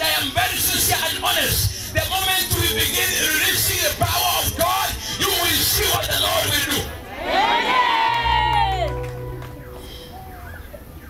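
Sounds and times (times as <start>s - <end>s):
crowd cheering: 7.0s - 11.0s.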